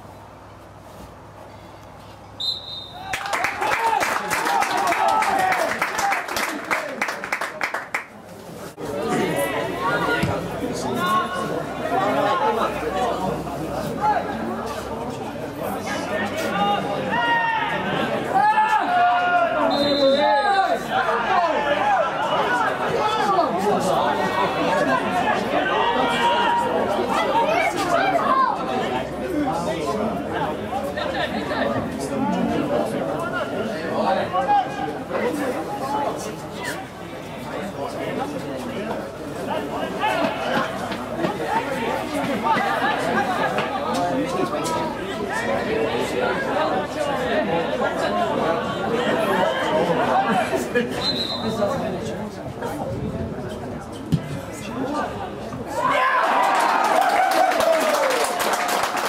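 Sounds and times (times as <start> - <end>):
people chattering: 0.0 - 59.0
babble of voices: 8.1 - 56.3.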